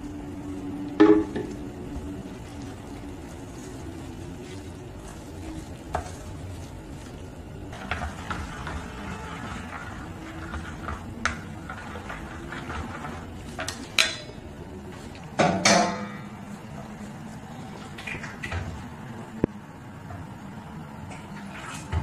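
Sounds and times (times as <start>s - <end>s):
chopsticks stirring batter: 1.9s - 14.3s.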